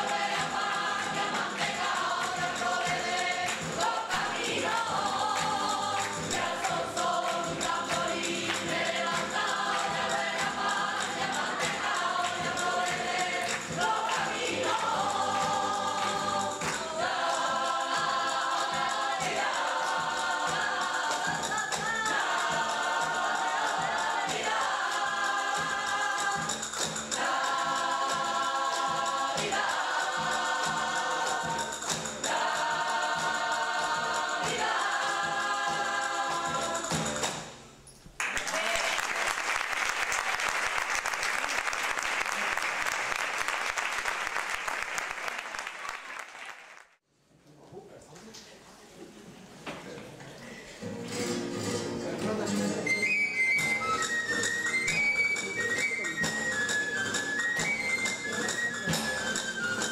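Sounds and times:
audience applause: 0:38.2 - 0:47.0.

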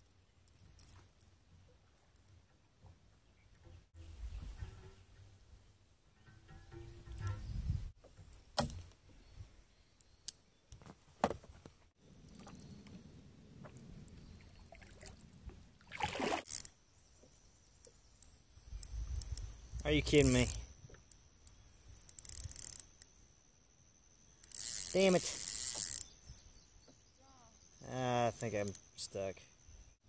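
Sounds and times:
paddle splashing in water: 0:14.6 - 0:16.7.

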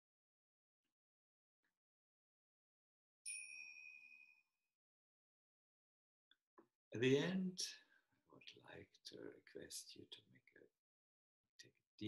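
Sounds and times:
bright bell-like ding: 0:03.3 - 0:04.4.

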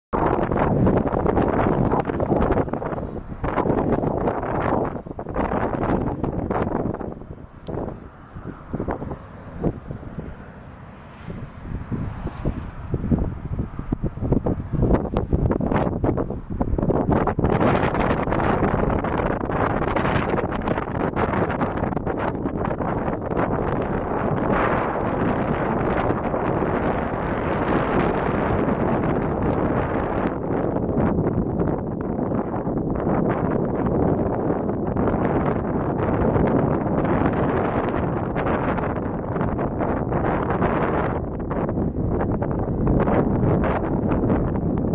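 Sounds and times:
wind buffeting microphone: 0:00.1 - 0:44.9.

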